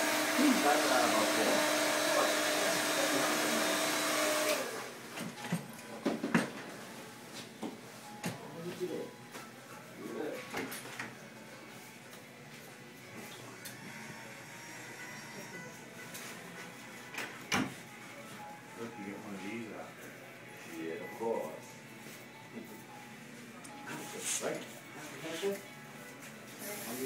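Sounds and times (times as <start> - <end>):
music playing: 5.4 - 27.0.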